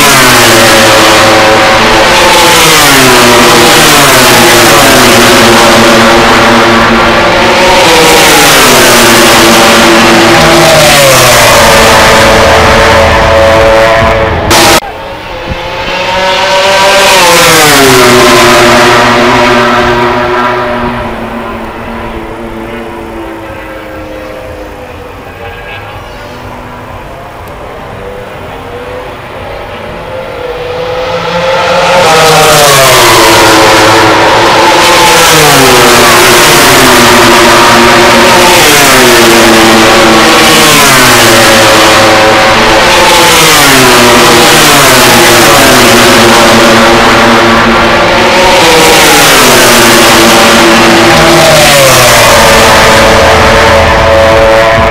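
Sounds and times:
racing motorcycle engines revving: 0:00.0 - 0:54.9.

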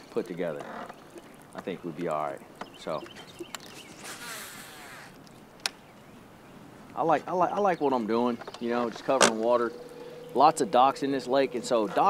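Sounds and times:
fishing reel spool whirring: 0:09.1 - 0:12.0.

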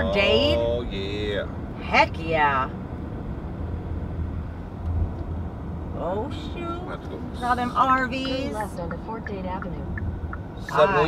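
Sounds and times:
car engine rumble: 0:00.0 - 0:11.0
tyres on road: 0:00.0 - 0:11.0.

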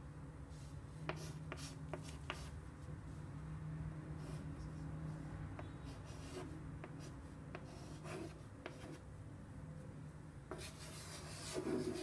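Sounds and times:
chalk writing on chalkboard: 0:01.0 - 0:02.6, 0:04.2 - 0:09.0, 0:10.5 - 0:12.0.

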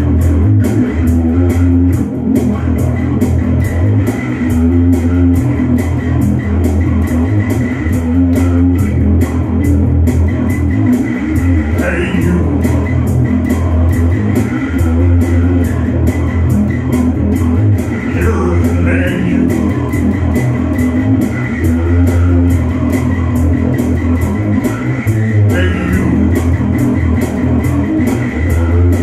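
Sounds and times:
electric bass guitar: 0:00.0 - 0:29.0
steady ticking beat: 0:00.0 - 0:29.0.

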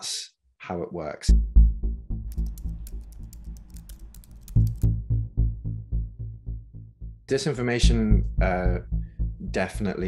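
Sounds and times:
keyboard typing clicks: 0:02.3 - 0:04.9.

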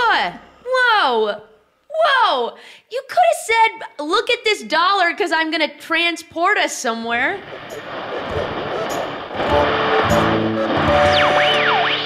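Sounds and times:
guitar-led theme music: 0:07.5 - 0:12.0.

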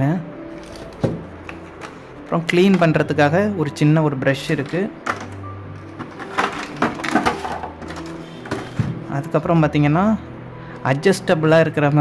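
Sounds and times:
plastic packaging clicks and rattles: 0:04.6 - 0:08.7.

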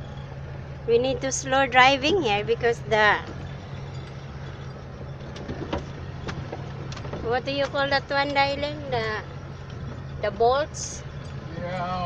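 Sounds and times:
knocks and rattles on rough road: 0:00.0 - 0:12.0
vehicle engine and tyres rumbling: 0:00.0 - 0:12.0.

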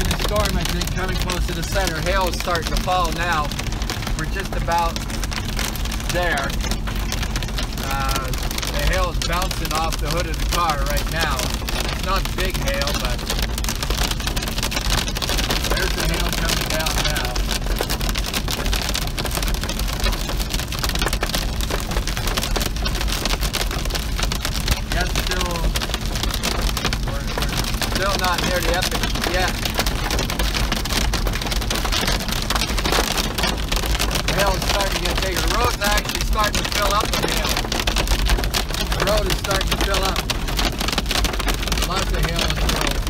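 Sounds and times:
rain and hail on car roof: 0:00.0 - 0:43.0
road noise: 0:00.0 - 0:43.0.

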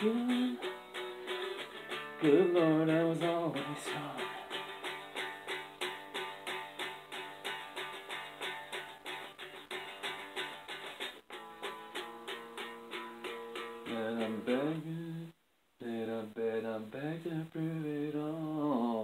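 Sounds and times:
guitar picked notes: 0:00.0 - 0:15.0.

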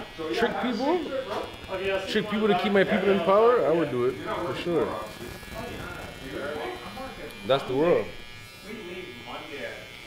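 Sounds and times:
electric hair clipper buzzing: 0:00.0 - 0:10.0
faint voices: 0:00.0 - 0:10.0.

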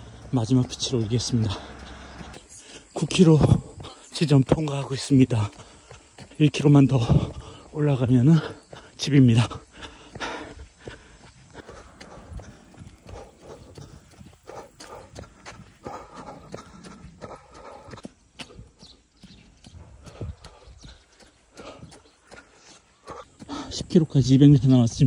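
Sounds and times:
running footsteps on asphalt: 0:00.0 - 0:25.0.

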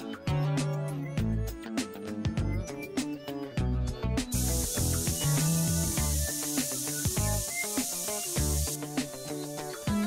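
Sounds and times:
background music with a beat: 0:00.0 - 0:10.0
spray lance hissing: 0:04.3 - 0:09.9.

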